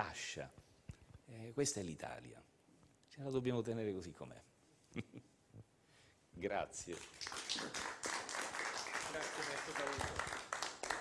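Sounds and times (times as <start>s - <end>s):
audience applauding: 6.9s - 11.0s.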